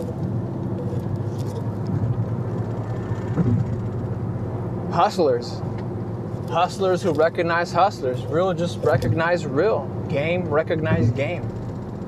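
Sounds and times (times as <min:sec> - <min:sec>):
car driving hum from inside: 0:00.0 - 0:12.0.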